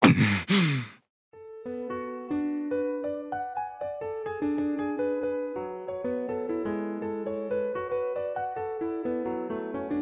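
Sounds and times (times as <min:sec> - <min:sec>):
breathy vocal sigh: 0:00.0 - 0:01.0.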